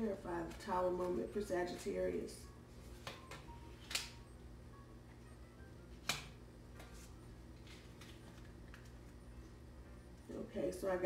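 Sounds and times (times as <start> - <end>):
faint low hum: 0.0 - 11.0
sharp card snaps: 3.8 - 4.2, 6.0 - 6.4
cards shuffling: 6.0 - 9.2.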